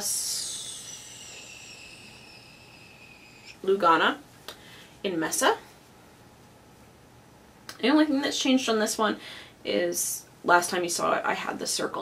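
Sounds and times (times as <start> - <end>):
high hiss with whine tones: 0.0 - 7.4.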